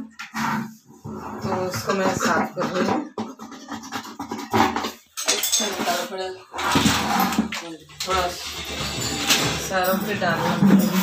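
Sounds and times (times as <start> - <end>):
brush scrubbing plastic bucket: 0.0 - 5.0, 9.7 - 11.0
hollow knocks of bucket: 1.4 - 5.1.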